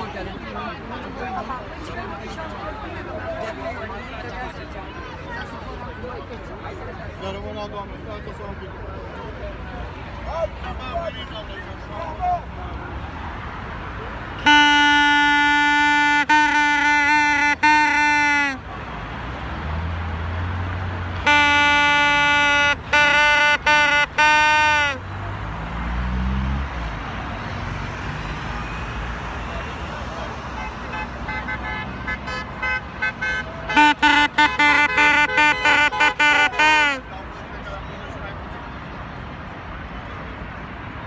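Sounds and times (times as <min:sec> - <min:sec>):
crowd noise: 0:00.0 - 0:41.0
street traffic: 0:00.0 - 0:41.0
loud horn blasts: 0:14.4 - 0:18.7, 0:21.2 - 0:25.1, 0:30.5 - 0:37.1.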